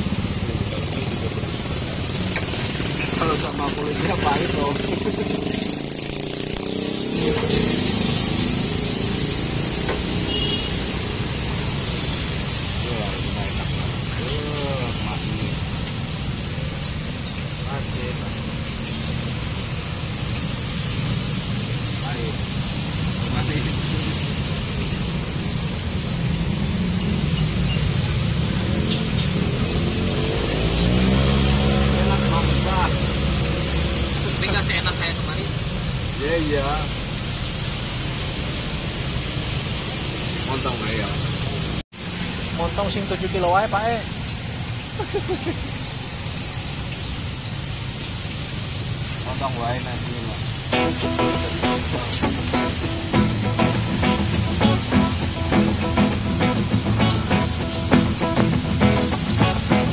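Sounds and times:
passing vehicle engine: 0.0s - 42.7s, 50.4s - 59.9s
road traffic rumble: 0.0s - 59.9s.

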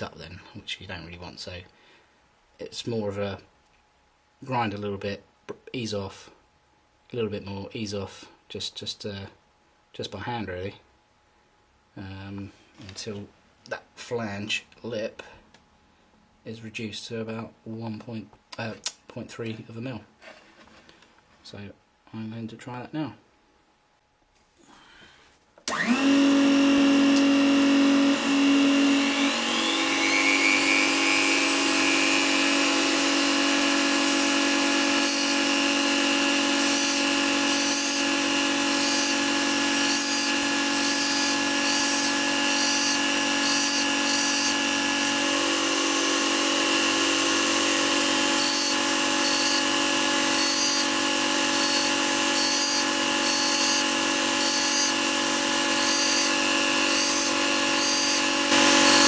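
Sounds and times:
rotary tool whine: 25.6s - 59.0s
lathe motor hum: 25.7s - 59.0s
grinding disc on metal: 29.3s - 59.0s.

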